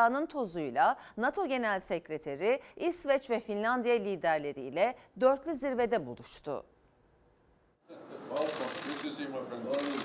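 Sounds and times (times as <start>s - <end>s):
camera shutters clicking rapidly: 8.4s - 10.0s.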